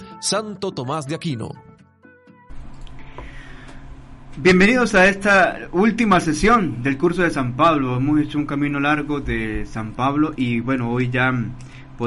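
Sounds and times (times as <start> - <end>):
room microphone hiss and hum: 2.5 - 12.0.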